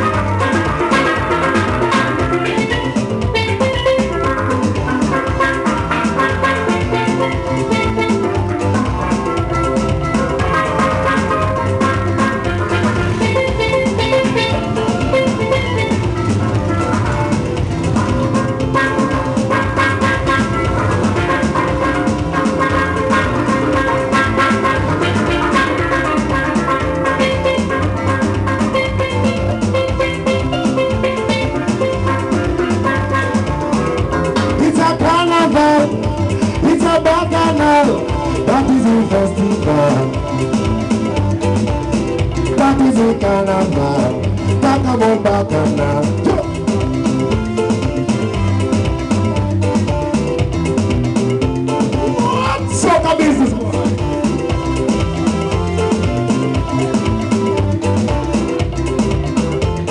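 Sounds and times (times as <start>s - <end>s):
bass: 0.0s - 59.9s
drums: 0.0s - 59.9s
steel pan melody: 0.0s - 59.9s.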